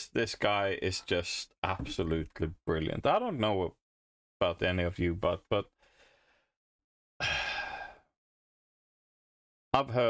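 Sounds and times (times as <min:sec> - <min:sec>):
faint breath: 0:05.8 - 0:06.6
man sighing: 0:07.2 - 0:08.1.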